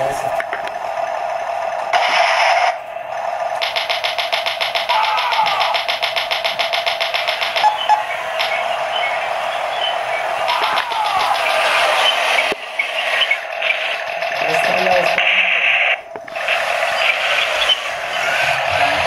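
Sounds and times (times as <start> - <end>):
engine-like electronic drone: 0.0 - 19.0
toy electronic gunfire rattle: 1.9 - 2.8, 3.6 - 8.8, 10.4 - 18.4.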